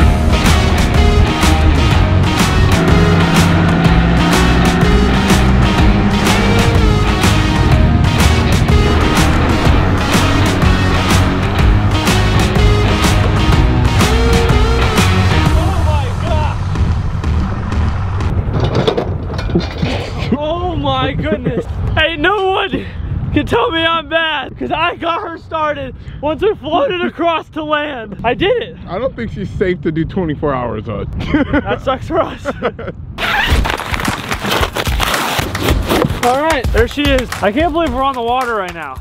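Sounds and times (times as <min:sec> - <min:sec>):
outboard motor rumbling: 0:00.0 - 0:19.3
cardboard and plastic rustling: 0:33.4 - 0:36.5.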